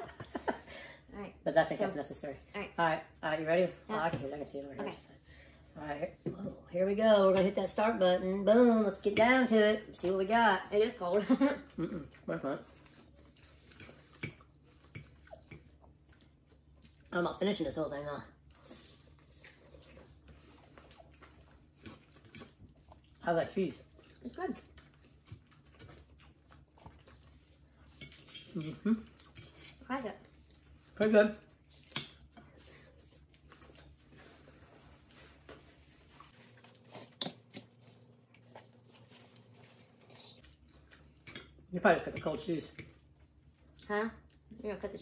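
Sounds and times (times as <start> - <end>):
chewing: 12.0 - 17.1, 18.3 - 23.2, 23.8 - 41.7.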